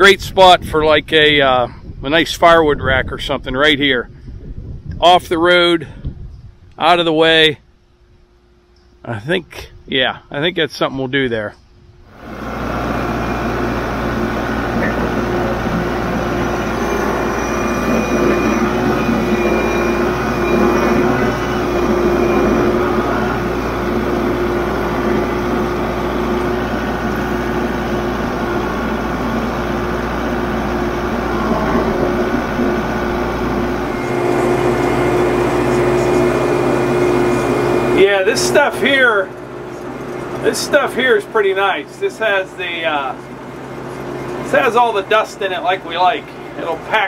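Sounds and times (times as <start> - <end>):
tractor diesel engine running: 12.1 - 47.0.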